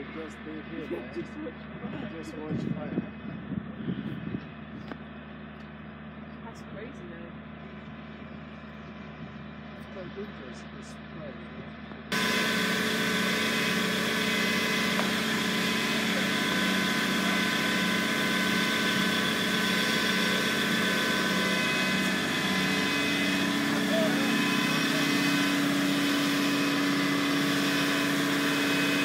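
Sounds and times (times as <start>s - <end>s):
deep steady hum: 0.0s - 29.0s
engine idling: 0.0s - 29.0s.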